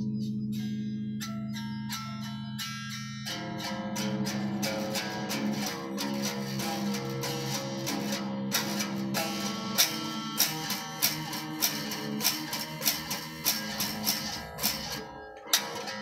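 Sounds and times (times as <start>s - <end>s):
electric guitar picked: 0.0s - 16.0s.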